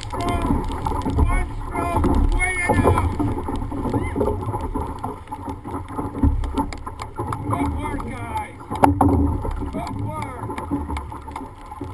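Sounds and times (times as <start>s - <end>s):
paddles splashing through water: 0.0s - 11.9s.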